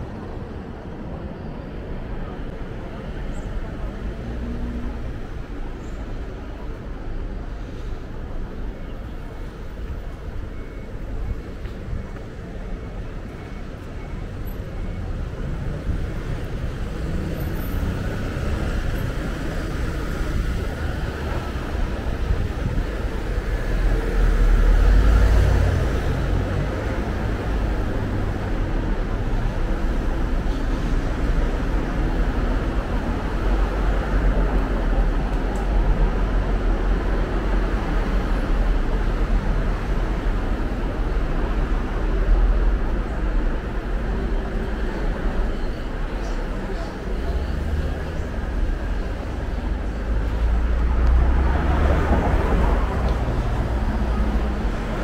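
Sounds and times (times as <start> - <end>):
road traffic: 0.0 - 55.0.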